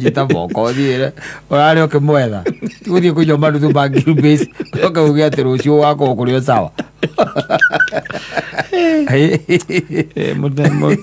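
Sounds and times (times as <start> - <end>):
men chuckling and laughing: 0.0 - 1.0, 2.4 - 11.0.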